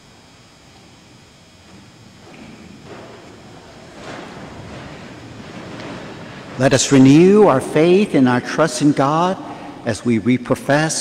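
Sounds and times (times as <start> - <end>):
steady rushing noise: 1.6 - 10.2.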